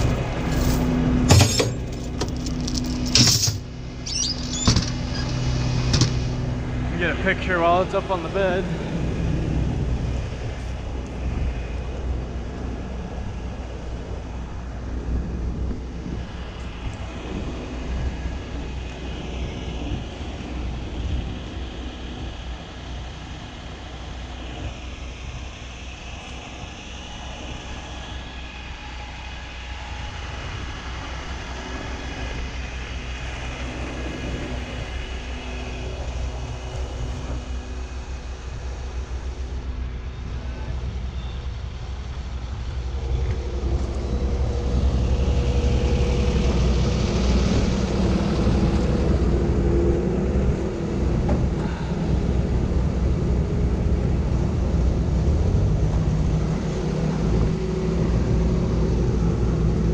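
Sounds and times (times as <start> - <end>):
large diesel engine idling: 0.0 - 59.9.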